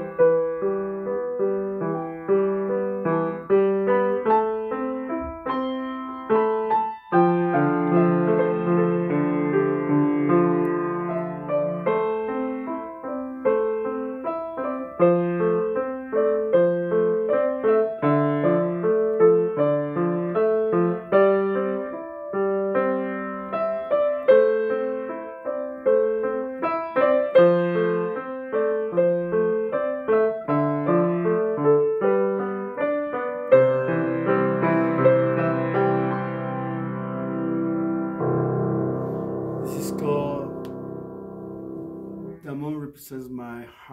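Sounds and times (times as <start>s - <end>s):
solo piano melody: 0.0s - 42.8s.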